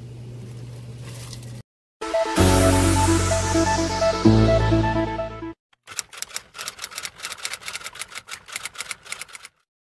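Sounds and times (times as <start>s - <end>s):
electronic background music: 2.0s - 5.6s.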